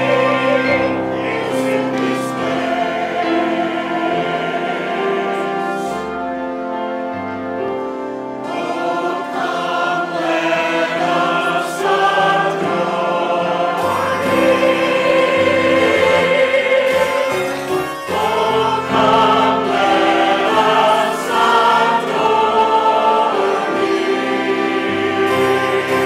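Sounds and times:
church choir singing: 0.0s - 26.0s
instrumental accompaniment: 0.0s - 26.0s.

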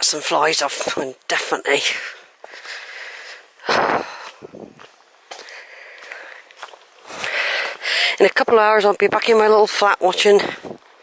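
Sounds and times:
footsteps on stony track: 0.0s - 11.0s.

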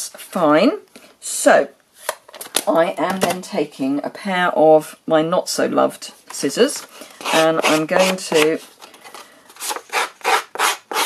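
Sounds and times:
scissor blade scraping cardstock: 7.2s - 8.5s, 9.6s - 11.0s.

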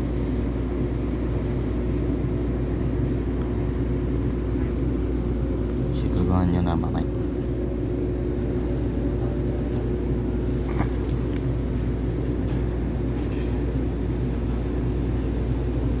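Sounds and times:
train cabin rumble and hum: 0.0s - 16.0s.

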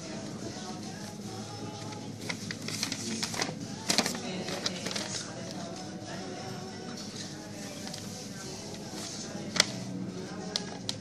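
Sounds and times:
paper crackling and rustling: 0.6s - 5.9s, 7.0s - 11.0s.

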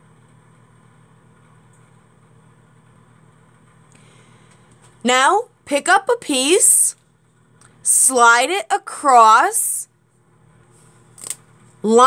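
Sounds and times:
woman speaking: 5.0s - 7.0s, 7.8s - 9.9s
sticky tape crackle: 11.2s - 11.4s.

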